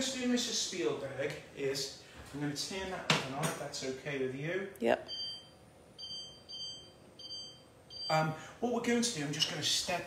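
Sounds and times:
cooktop control beeps: 5.0 - 8.3.

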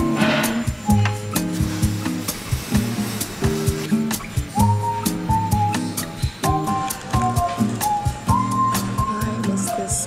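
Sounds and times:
background music with beat: 0.0 - 10.0.

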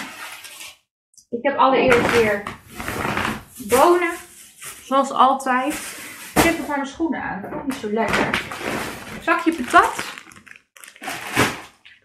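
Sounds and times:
plastic bag crinkling: 8.4 - 12.0.

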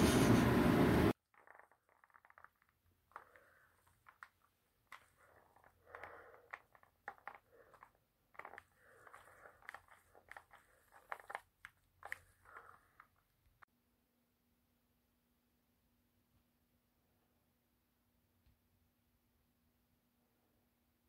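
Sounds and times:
faint handling clicks and rustles: 1.2 - 13.7.

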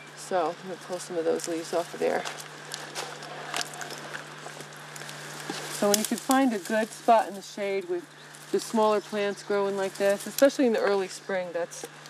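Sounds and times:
faint steady hum: 0.0 - 12.0
leaves rustling and crackling: 0.0 - 12.0.

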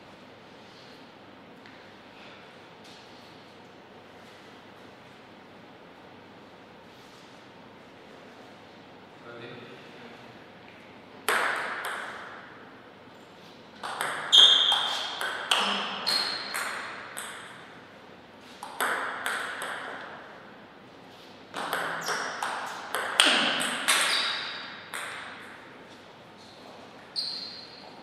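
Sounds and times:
table tennis ball clicks: 13.8 - 17.6, 21.6 - 25.4.

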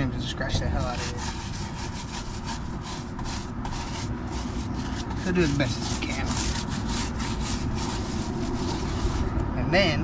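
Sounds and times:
brush scrubbing wet tire: 0.5 - 9.4.

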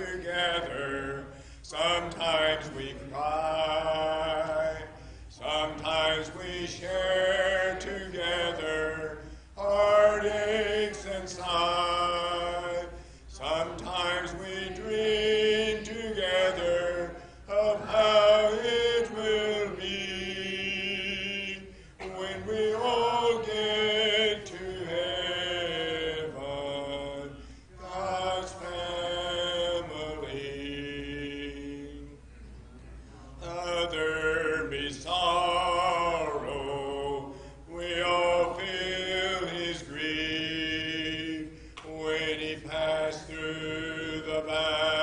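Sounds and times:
congregation singing a hymn: 0.0 - 32.3, 33.3 - 45.0.

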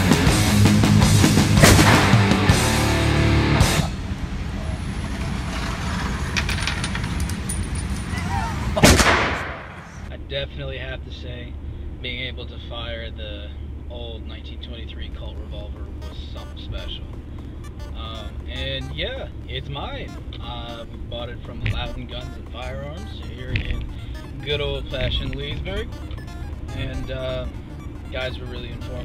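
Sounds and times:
car cabin hum while driving: 9.8 - 29.0.

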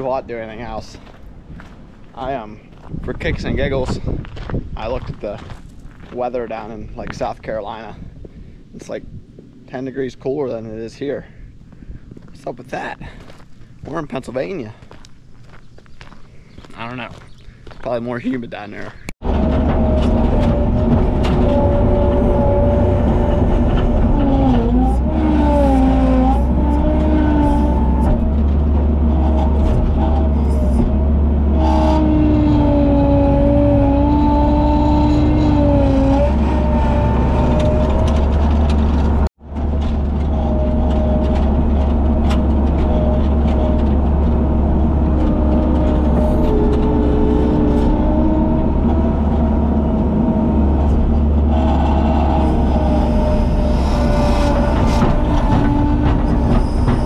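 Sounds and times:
skid loader engine running: 19.2 - 57.0
whining tones: 19.2 - 57.0.

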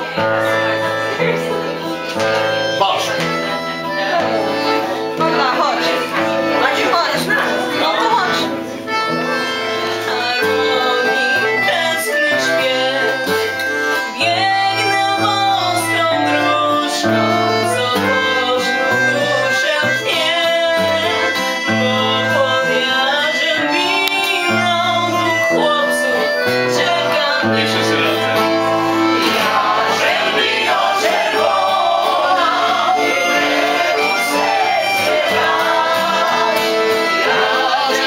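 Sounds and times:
acoustic guitar: 0.0 - 38.0
held bass notes: 24.5 - 38.0
women singing together: 29.1 - 38.0.

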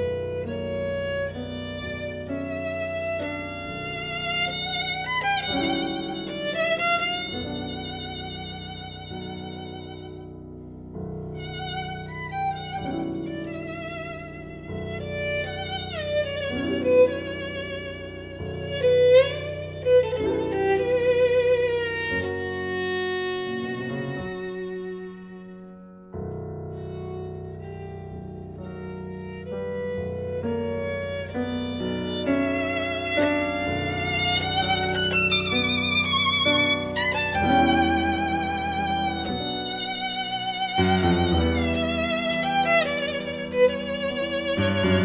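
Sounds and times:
violin melody with vibrato: 0.0 - 10.4, 11.0 - 45.0
piano: 0.0 - 45.0.

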